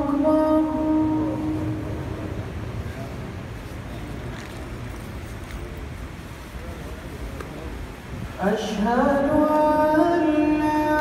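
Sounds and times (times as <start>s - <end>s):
low rumble of crowded hall: 0.0s - 11.0s
faint murmuring voices: 1.3s - 8.9s.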